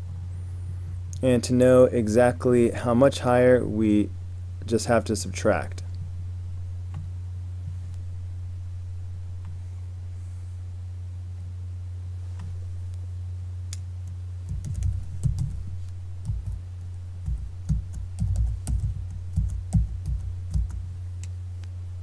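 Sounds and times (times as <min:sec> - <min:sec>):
steady low hum: 0:00.0 - 0:22.0
typing on computer keyboard: 0:17.2 - 0:20.8.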